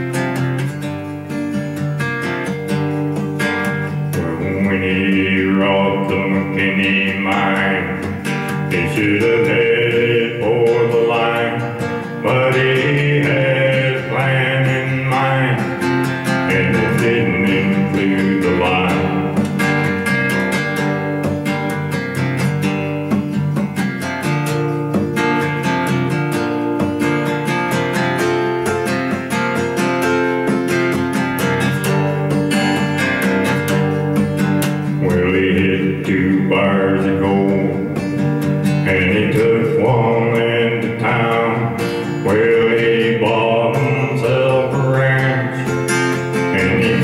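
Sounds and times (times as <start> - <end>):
acoustic guitar strumming: 0.0 - 47.0
man singing: 3.9 - 20.8, 34.8 - 47.0.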